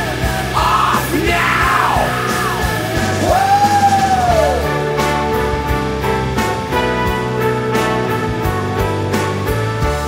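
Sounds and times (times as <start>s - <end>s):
rock song with yelled vocal: 0.0s - 5.1s.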